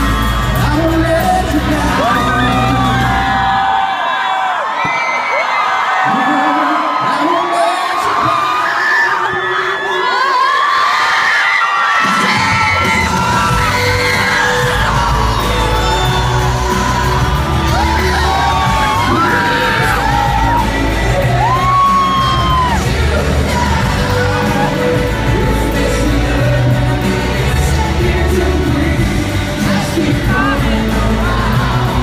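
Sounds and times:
amplified pop band music: 0.0s - 5.0s, 5.8s - 32.0s
fans screaming and cheering: 0.0s - 32.0s.

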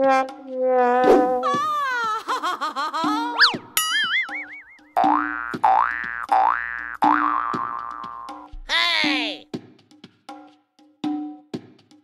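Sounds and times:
bouncy comic music: 0.0s - 9.5s
wobbling boing tone: 3.4s - 8.6s.

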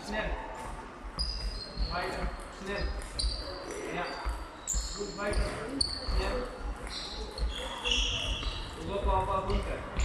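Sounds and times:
shoes squeaking on floor: 1.1s - 10.0s.

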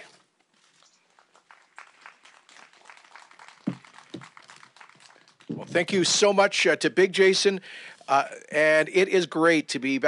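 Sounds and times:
light applause: 1.1s - 6.0s.

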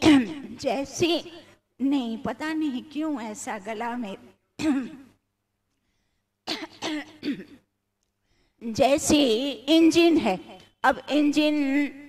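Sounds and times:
woman clearing her throat: 4.6s - 5.2s, 6.5s - 7.7s.

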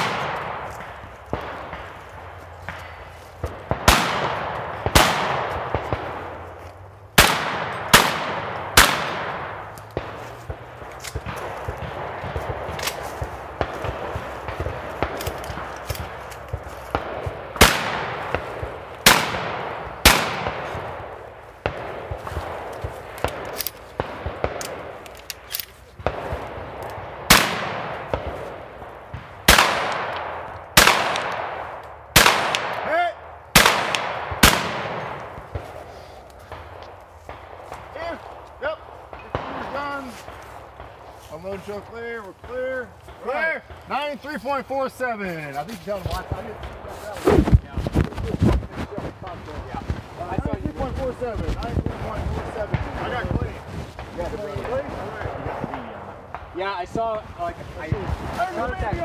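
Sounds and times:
shotgun shots echoing: 0.0s - 44.1s.

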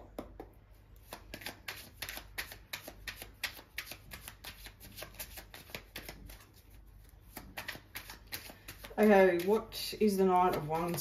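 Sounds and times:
cards being shuffled: 1.0s - 6.6s, 7.3s - 9.6s.

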